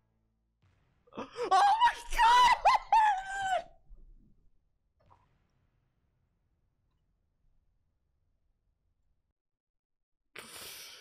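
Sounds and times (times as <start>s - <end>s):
man laughing squeal: 1.2s - 3.7s.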